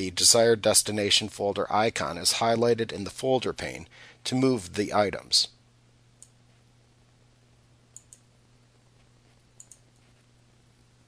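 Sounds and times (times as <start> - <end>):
faint low hum: 0.0 - 11.0
computer mouse clicks: 7.9 - 8.3, 9.6 - 10.1.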